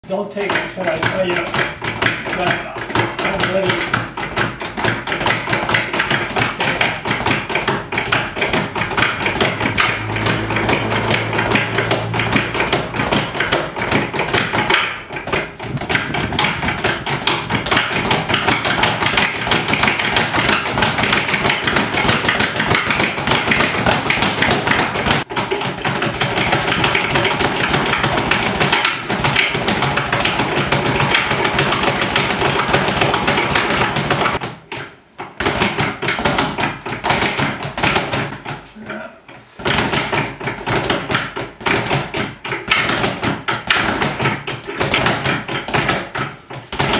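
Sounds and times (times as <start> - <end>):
speed bag being punched: 0.4 - 38.7, 39.6 - 46.9.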